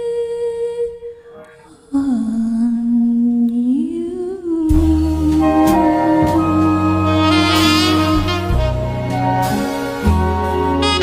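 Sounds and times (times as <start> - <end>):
person humming: 4.7 - 8.7
band accompaniment with bass: 4.7 - 11.0.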